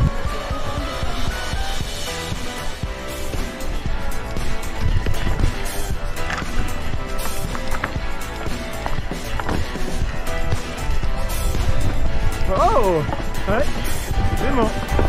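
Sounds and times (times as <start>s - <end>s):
background music: 0.0s - 15.0s
mountain bike rumble and rattle: 1.8s - 15.0s
wheels knocking on rocks: 4.9s - 10.0s.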